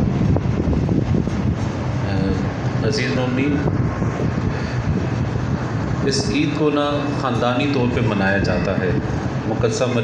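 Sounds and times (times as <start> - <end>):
ventilation low hum: 0.0 - 10.0
ventilation rushing hiss: 0.0 - 10.0.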